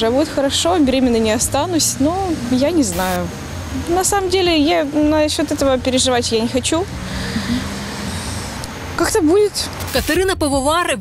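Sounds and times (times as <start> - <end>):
vehicle engine and tyre noise: 0.0 - 10.0.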